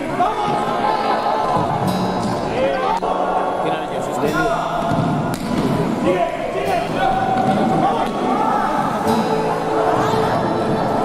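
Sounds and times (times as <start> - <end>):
players shouting: 4.2 - 11.0.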